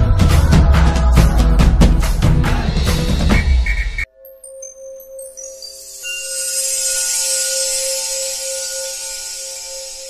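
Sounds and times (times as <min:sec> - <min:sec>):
bright airy shimmer: 0:04.2 - 0:10.0.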